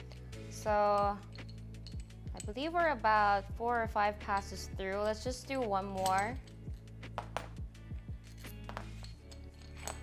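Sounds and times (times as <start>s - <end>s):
low sustained background music: 0.0s - 10.0s
metal tool clicks: 6.0s - 7.6s, 8.6s - 10.0s.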